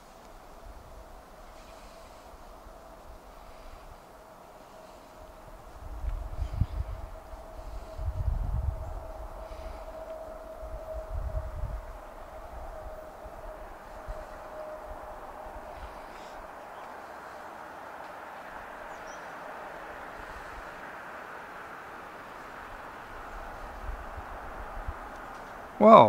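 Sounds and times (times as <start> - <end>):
train rail and wheel noise: 0.0 - 25.8
steady high tone: 5.0 - 17.2.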